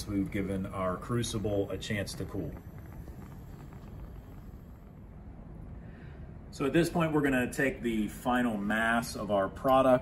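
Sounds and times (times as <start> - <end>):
gas burner flame rumbling: 0.0 - 10.0.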